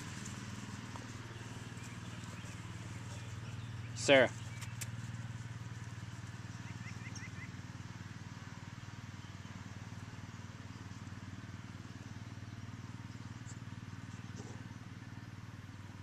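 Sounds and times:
distant small engine drone: 0:00.0 - 0:16.0.

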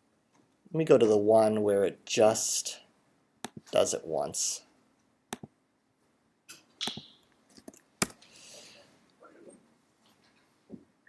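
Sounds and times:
mouse and keyboard clicks: 0:06.5 - 0:08.2.

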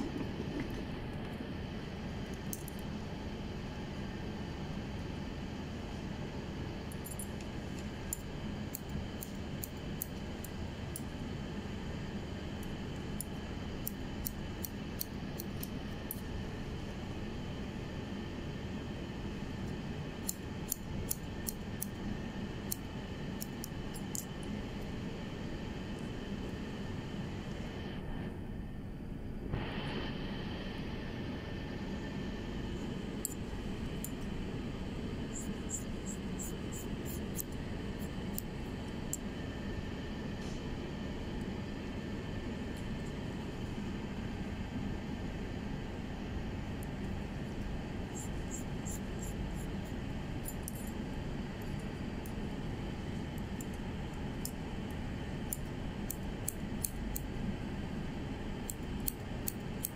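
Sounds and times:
scissors snipping hair: 0:08.1 - 0:11.1, 0:13.2 - 0:16.2, 0:20.2 - 0:22.0, 0:22.6 - 0:24.3, 0:35.3 - 0:38.5, 0:48.1 - 0:49.7, 0:55.4 - 0:57.3, 0:58.6 - 0:59.9.

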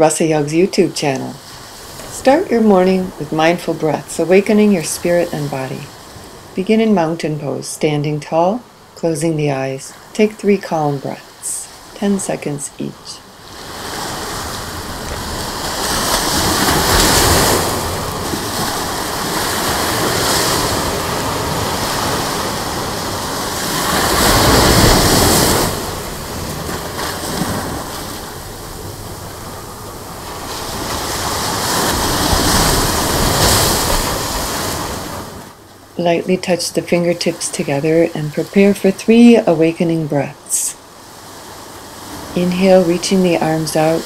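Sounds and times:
ocean surf breaking on beach: 0:00.0 - 0:07.3, 0:08.7 - 0:44.0.

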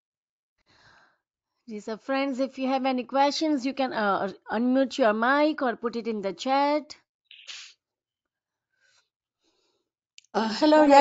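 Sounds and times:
person's sharp breathy noise: 0:07.4 - 0:07.7.

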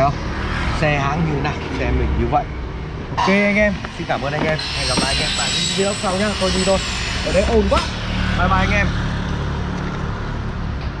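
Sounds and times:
low engine drone: 0:00.0 - 0:11.0
street noise: 0:00.0 - 0:11.0.

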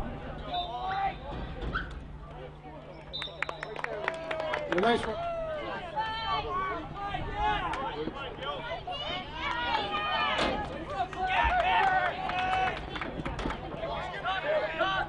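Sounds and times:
crowd calling and shouting: 0:00.0 - 0:15.0.

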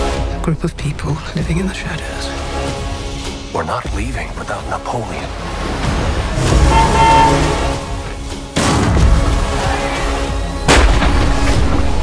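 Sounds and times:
dark trailer music: 0:00.0 - 0:12.0.

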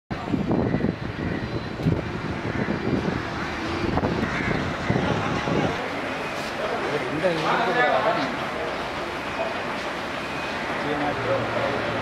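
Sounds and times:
vehicle engine rumble: 0:00.1 - 0:12.0.

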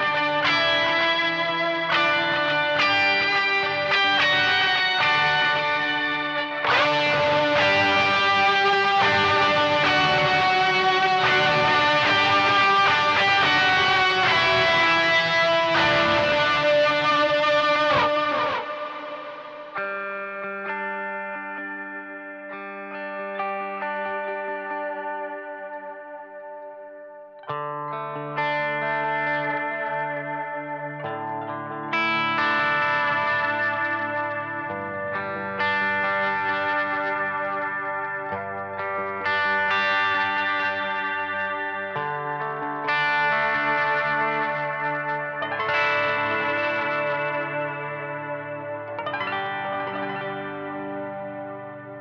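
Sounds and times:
electric guitar playing: 0:00.0 - 0:52.0.

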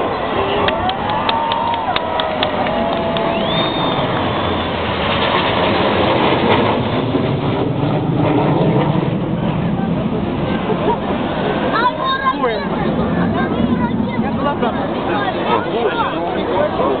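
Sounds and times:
crowd noise: 0:00.0 - 0:17.0
jet flypast noise: 0:00.0 - 0:17.0.

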